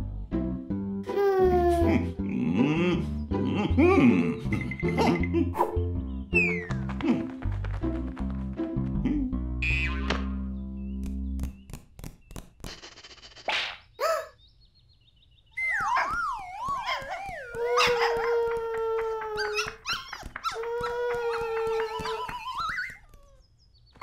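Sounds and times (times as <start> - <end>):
person howling like a dog: 17.5 - 19.8, 20.4 - 22.5.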